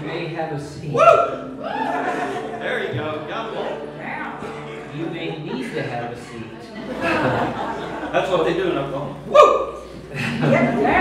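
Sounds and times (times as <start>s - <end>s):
voices talking in large room: 0.0s - 11.0s.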